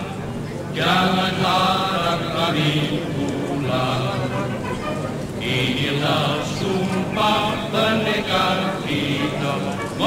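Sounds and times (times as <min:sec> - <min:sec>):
voices chanting: 0:00.8 - 0:10.0.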